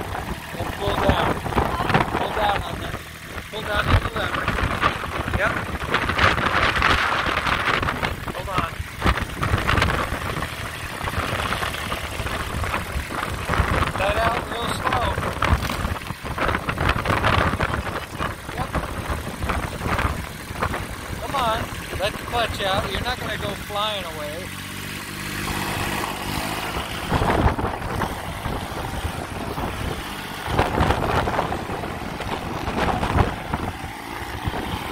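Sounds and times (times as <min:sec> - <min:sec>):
voices talking: 0:00.0 - 0:05.8, 0:08.0 - 0:09.2, 0:13.8 - 0:15.8, 0:16.6 - 0:24.6
wind noise on microphone: 0:00.0 - 0:23.7, 0:25.3 - 0:34.9
diesel tractor engine idling: 0:00.0 - 0:34.9.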